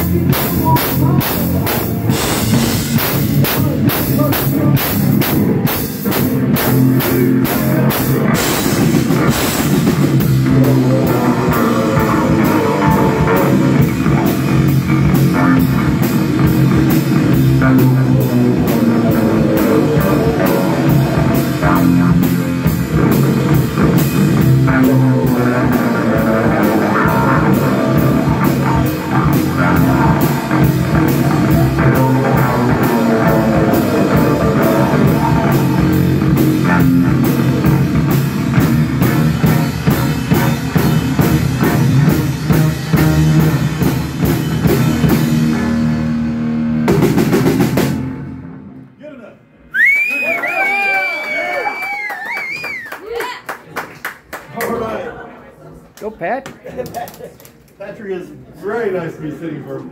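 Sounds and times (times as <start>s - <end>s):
drum kit and cymbals: 0.0s - 48.3s
electric bass guitar: 0.0s - 49.0s
high wavering whistle: 49.7s - 52.9s.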